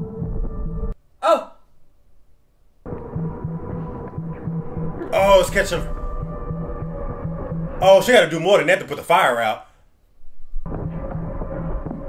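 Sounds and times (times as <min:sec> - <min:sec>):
droning horror score with pulsing beat: 0:00.0 - 0:01.0, 0:02.8 - 0:08.5, 0:10.6 - 0:12.0.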